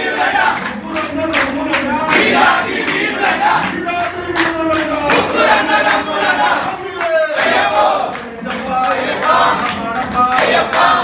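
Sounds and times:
handclaps: 0:00.0 - 0:11.0
men chanting devotional song: 0:00.0 - 0:11.0.

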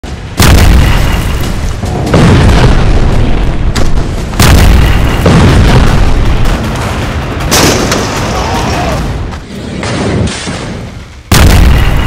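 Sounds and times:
heavy explosion booms: 0:00.2 - 0:09.2, 0:11.3 - 0:12.0.

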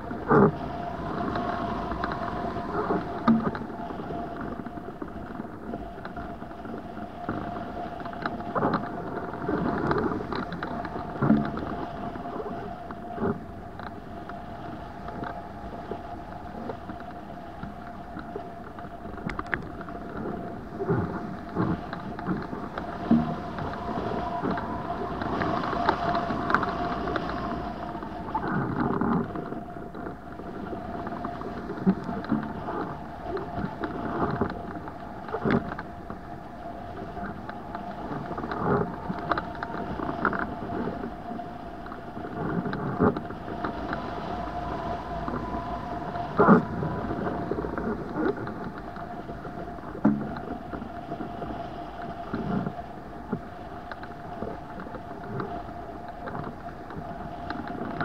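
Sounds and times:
wind rushing over microphone: 0:00.0 - 0:58.0
steady whistling tone: 0:22.5 - 0:28.6, 0:43.3 - 0:49.8.

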